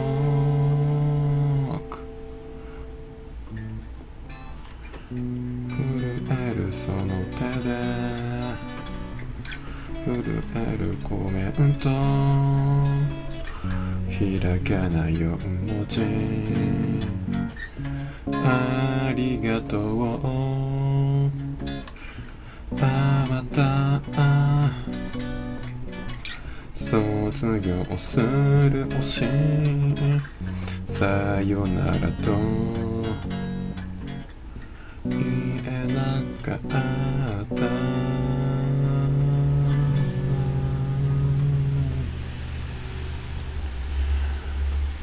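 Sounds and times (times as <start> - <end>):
man singing: 0.0 - 2.2, 5.7 - 9.2, 9.9 - 17.6, 18.3 - 21.6, 22.7 - 25.0, 26.8 - 33.8, 35.0 - 42.2
guitar strumming: 0.0 - 45.0
low rumble: 39.0 - 45.0.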